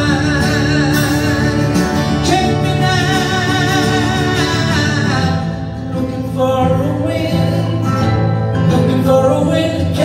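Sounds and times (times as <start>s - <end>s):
acoustic guitars strummed and picked: 0.0s - 10.0s.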